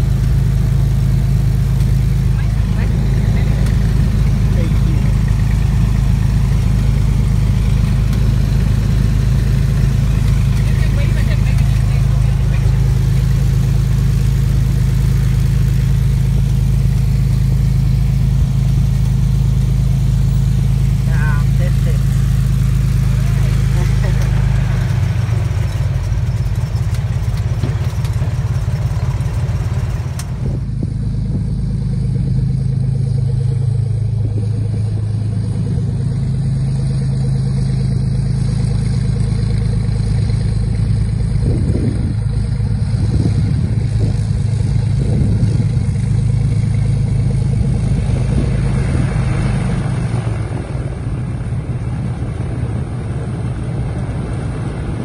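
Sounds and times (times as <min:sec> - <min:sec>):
propeller plane engine droning: 0:00.0 - 0:55.0.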